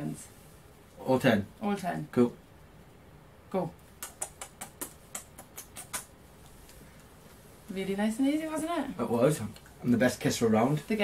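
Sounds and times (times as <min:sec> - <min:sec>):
man kissing fingers: 0:03.9 - 0:06.8.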